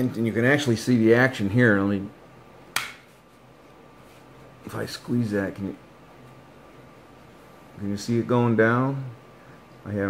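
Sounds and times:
sharp wooden click: 2.7 - 3.1.

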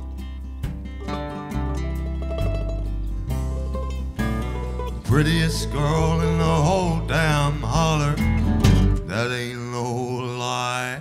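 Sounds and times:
man singing a long note: 5.1 - 8.3, 9.0 - 11.0.

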